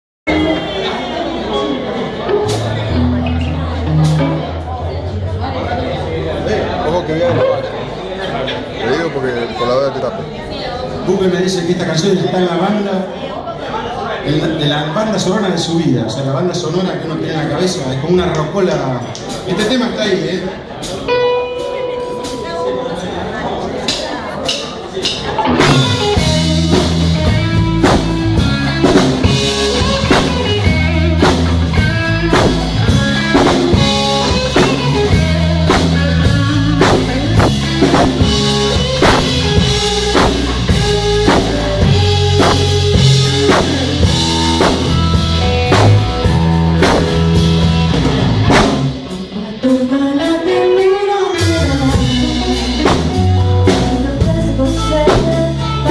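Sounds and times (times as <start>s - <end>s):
electric guitar: 0.3s - 7.9s, 20.8s - 23.3s, 25.2s - 55.9s
drums and bass beat: 2.3s - 5.2s, 23.8s - 50.4s, 51.4s - 55.9s.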